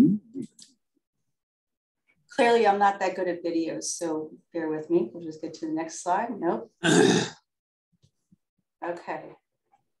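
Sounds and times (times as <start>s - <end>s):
person coughing: 6.8s - 7.4s.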